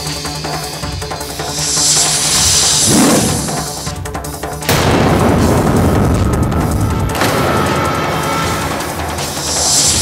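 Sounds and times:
dramatic background music: 0.0s - 10.0s
sudden boom: 4.7s - 8.1s.

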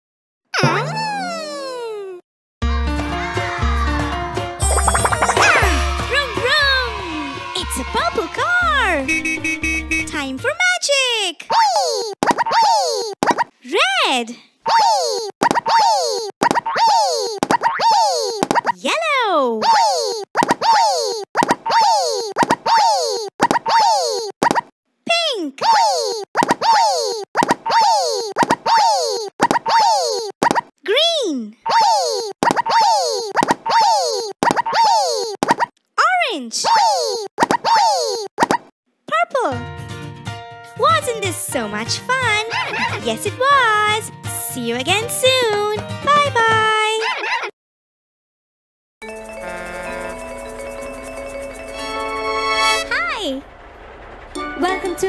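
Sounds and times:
cartoon bubble pops: 0.6s - 1.6s, 4.6s - 5.8s, 16.4s - 16.8s.

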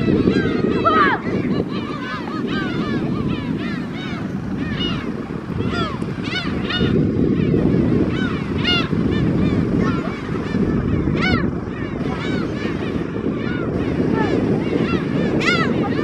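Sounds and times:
gulls calling: 0.0s - 16.0s.

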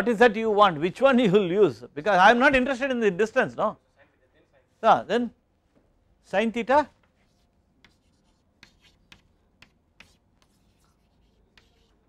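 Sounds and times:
chalk tapping and scratching: 7.0s - 12.0s.

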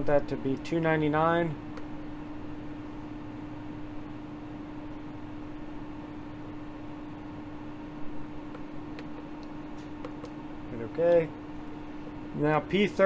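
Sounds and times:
fan machine hum: 0.0s - 13.0s.

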